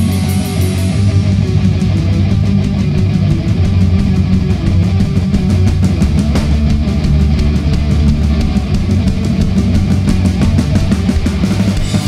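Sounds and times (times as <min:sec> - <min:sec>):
live punk rock band: 0:00.0 - 0:12.0.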